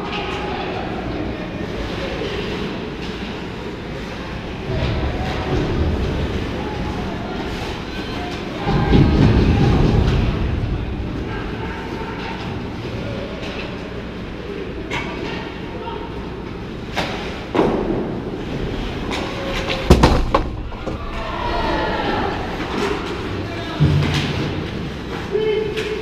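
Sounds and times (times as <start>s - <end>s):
skates rumbling on ice: 4.0s - 12.8s.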